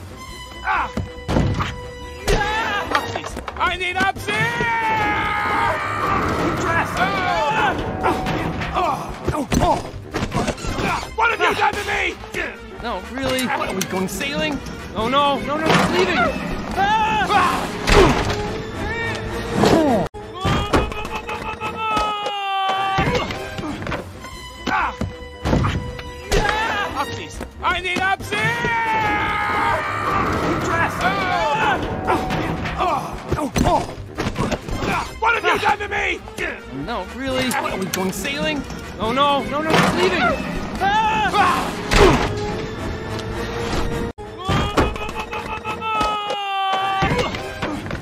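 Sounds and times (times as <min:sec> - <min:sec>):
background music: 0:00.0 - 0:48.0
character yelps: 0:44.4 - 0:47.4.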